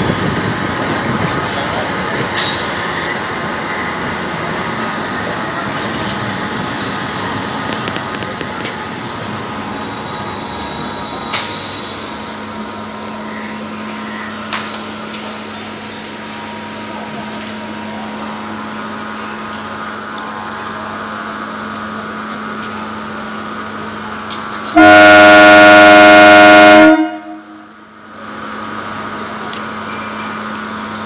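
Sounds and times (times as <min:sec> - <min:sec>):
electric train humming: 0:00.0 - 0:31.0
train horn blast: 0:24.7 - 0:27.7.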